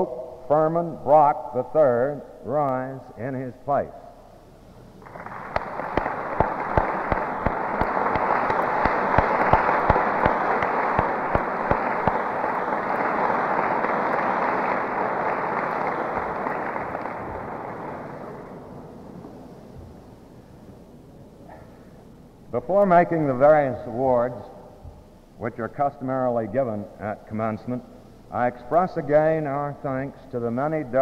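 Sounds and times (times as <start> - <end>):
audience applauding: 5.0 - 18.8.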